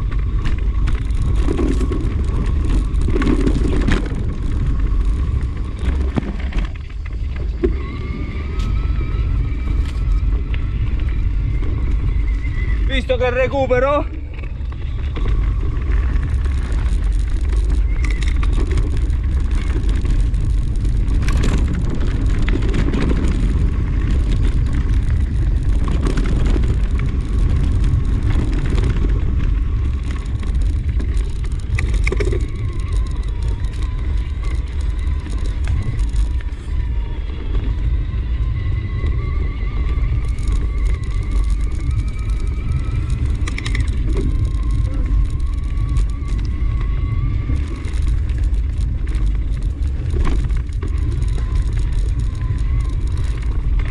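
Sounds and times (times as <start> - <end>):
bike tyres rolling on dirt: 0.0 - 53.9
faint thin whine: 0.0 - 53.9
wind rumble on microphone: 0.0 - 53.9.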